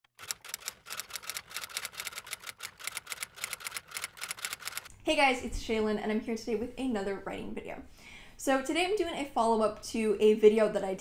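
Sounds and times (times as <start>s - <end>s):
typewriter keys clacking: 0.1s - 4.9s.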